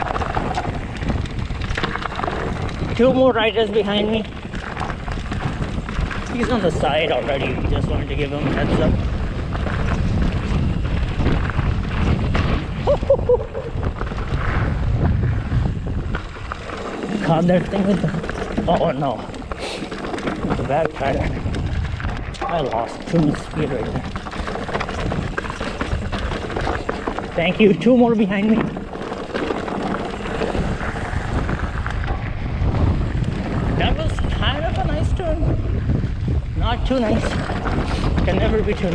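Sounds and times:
mountain bike rattling over rocks: 0.0 - 38.9
wind buffeting microphone: 0.0 - 38.9.

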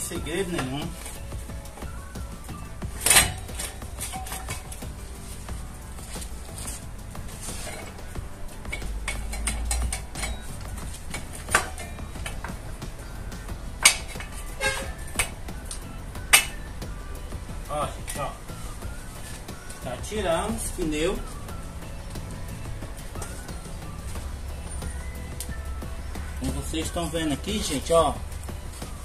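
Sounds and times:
background music: 0.0 - 29.0
metal clinks and knocks: 2.9 - 5.0, 6.1 - 12.6.

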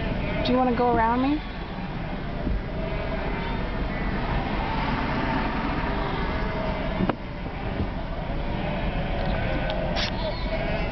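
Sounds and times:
car engine running: 0.0 - 10.9
sheep bleating: 8.5 - 10.9.

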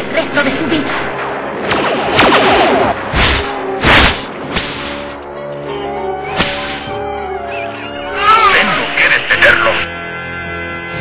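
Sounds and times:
background music: 0.0 - 11.0
whip cracks: 1.6 - 5.1, 6.3 - 7.0.

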